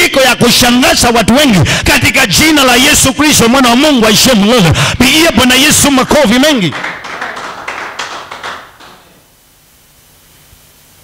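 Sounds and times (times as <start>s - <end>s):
congregation applauding: 6.4s - 9.3s.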